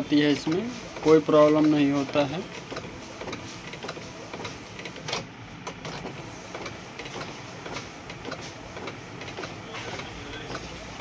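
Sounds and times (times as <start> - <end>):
printer carriage clicking: 0.0 - 11.0
sharp printer click: 0.0 - 11.0.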